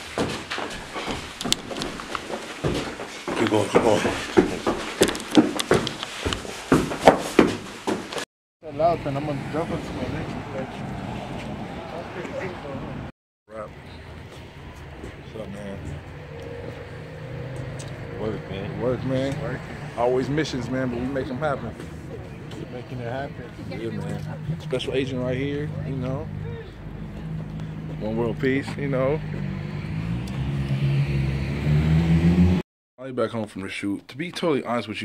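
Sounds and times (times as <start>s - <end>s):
vehicle engine humming: 8.6s - 32.6s.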